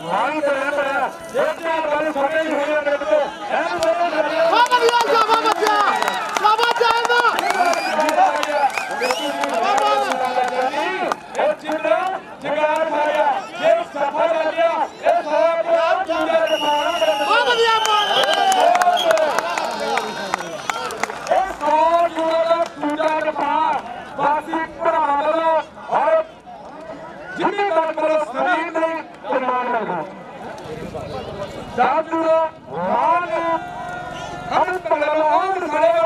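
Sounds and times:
man commentating rapidly: 0:00.0 - 0:18.2, 0:19.1 - 0:26.4, 0:30.8 - 0:36.0
crowd noise: 0:00.0 - 0:36.0.

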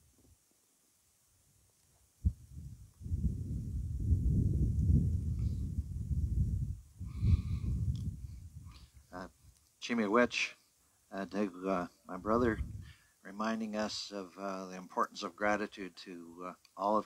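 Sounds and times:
wind buffeting phone microphone: 0:02.2 - 0:09.1, 0:12.2 - 0:13.0
person speaking: 0:09.1 - 0:17.0.

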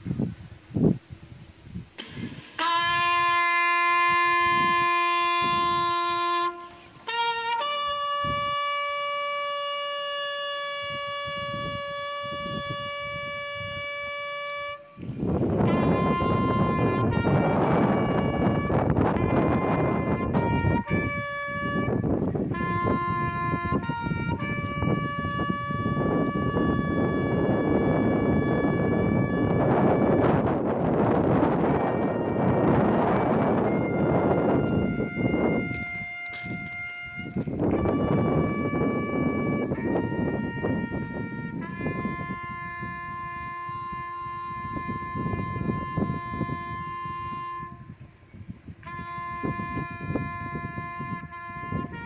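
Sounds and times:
wind buffeting microphone: 0:00.0 - 0:52.0
brass call of long held notes: 0:02.0 - 0:52.0.

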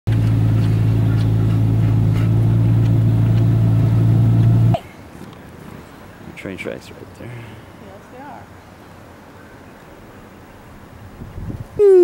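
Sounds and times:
car engine hum: 0:00.1 - 0:06.4.

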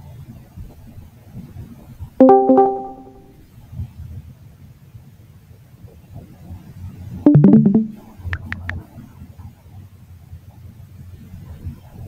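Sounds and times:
app notification chime: 0:02.2 - 0:03.3, 0:07.3 - 0:08.0.

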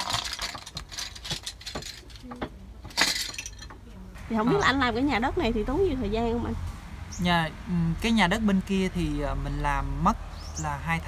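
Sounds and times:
bamboo straws clattering: 0:00.0 - 0:03.8.

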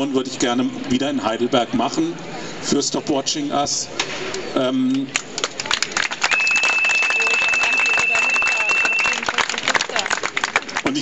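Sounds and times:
crowd clapping: 0:05.0 - 0:11.0
microphone feedback whistle: 0:06.3 - 0:09.3.

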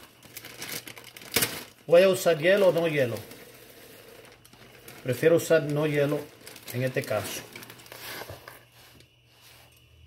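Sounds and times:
grain pattering into blender jar: 0:02.6 - 0:08.6.

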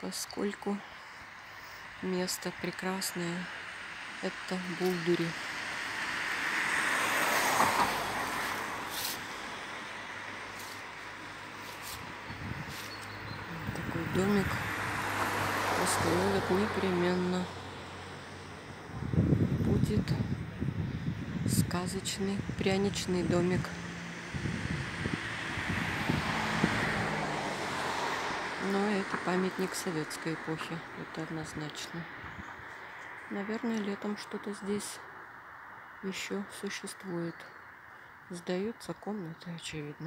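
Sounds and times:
vehicle passing by: 0:03.0 - 0:36.0.

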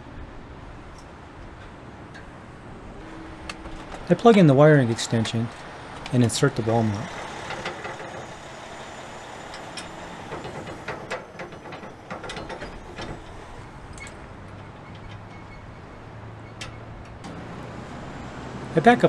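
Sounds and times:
metal clicks and clanks: 0:03.4 - 0:08.5, 0:09.4 - 0:15.7, 0:16.4 - 0:17.4.

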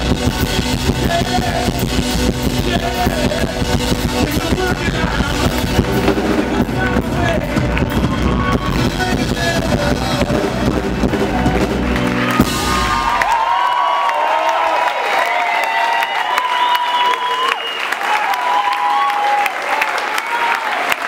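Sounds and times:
live rock band: 0:00.0 - 0:13.8
audience applauding and cheering: 0:04.2 - 0:21.0.

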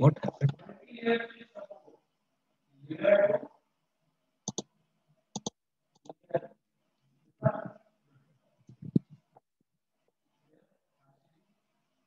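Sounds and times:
keyboard and mouse clicks: 0:04.5 - 0:04.7, 0:05.4 - 0:06.2.

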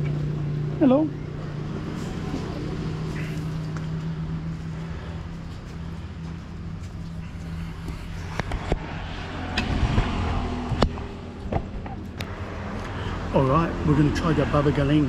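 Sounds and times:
low motor hum: 0:00.0 - 0:15.0.

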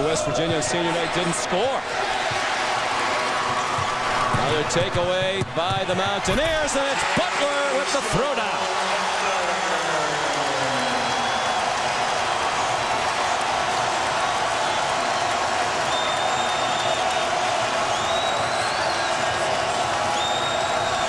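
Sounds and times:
arena crowd cheering: 0:00.0 - 0:21.0
high whistles: 0:15.8 - 0:19.4, 0:20.0 - 0:21.0.

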